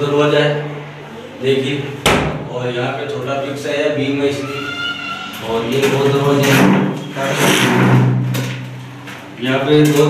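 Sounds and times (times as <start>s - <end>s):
sliding door rolling along track: 5.4s - 10.0s.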